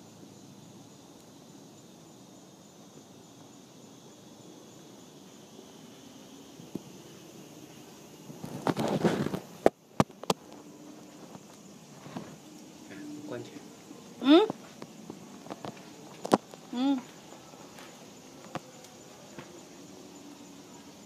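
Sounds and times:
faint outdoor background: 0.0 - 21.0.

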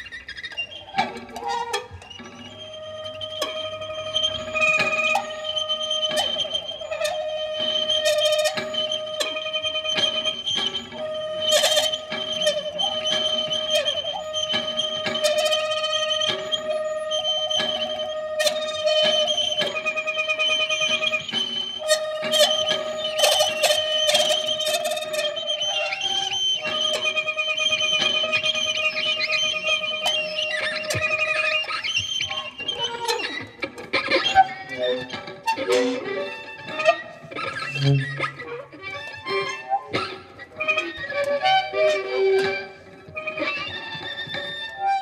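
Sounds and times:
violin: 0.0 - 45.0.

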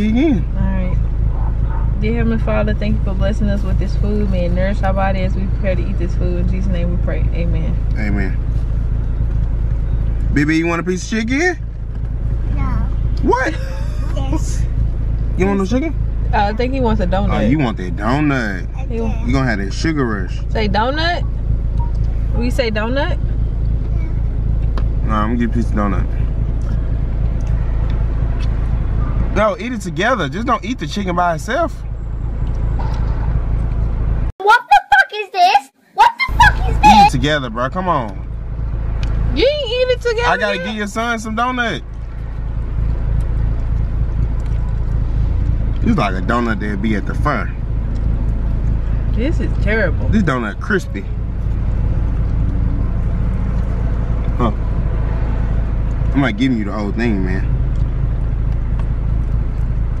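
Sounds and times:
car engine idling: 0.0 - 34.4, 36.0 - 60.0.

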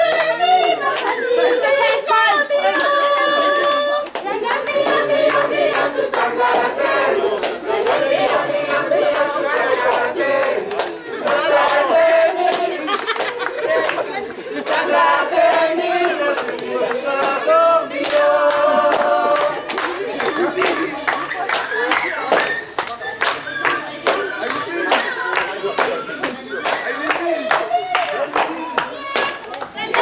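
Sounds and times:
group singing and chanting: 0.0 - 30.0
hand claps in rhythm: 0.0 - 30.0.

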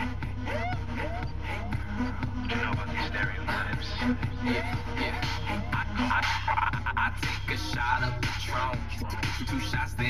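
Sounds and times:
rap music from car stereo: 0.0 - 10.0.

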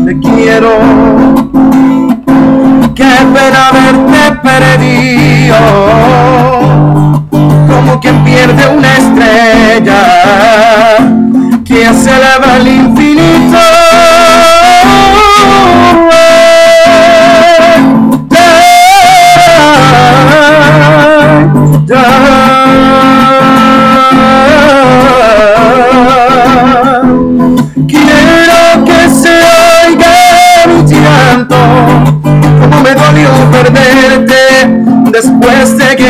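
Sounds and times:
man singing with vibrato: 0.0 - 36.0
strummed acoustic guitar: 0.0 - 36.0.

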